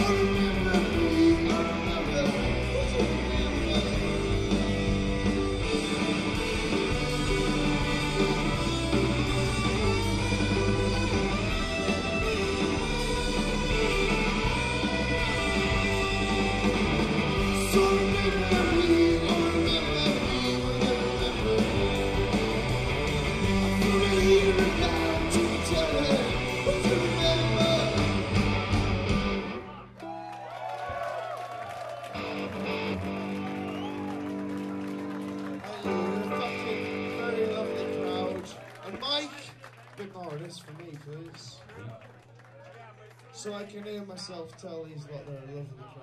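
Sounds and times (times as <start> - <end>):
live rock band playing: 0.0 - 29.6, 32.1 - 38.5
sustained guitar and bass tones: 0.0 - 29.9, 32.2 - 38.6.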